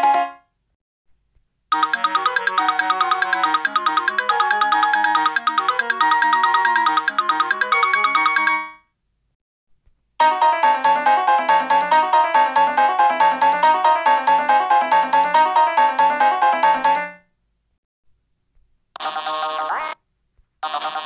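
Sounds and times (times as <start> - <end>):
wood block percussion pattern: 1.7 - 8.6.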